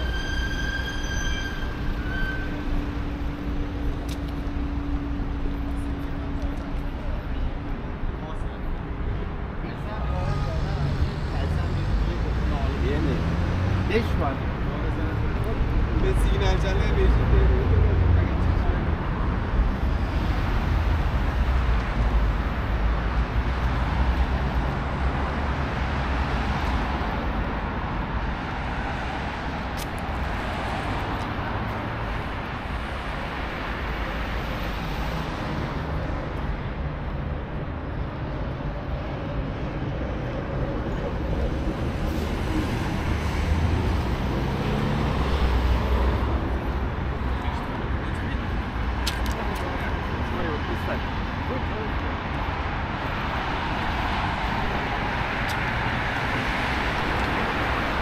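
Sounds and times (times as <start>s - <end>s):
road traffic rumble: 0.0s - 58.0s
passersby talking: 5.4s - 19.2s, 46.0s - 53.2s.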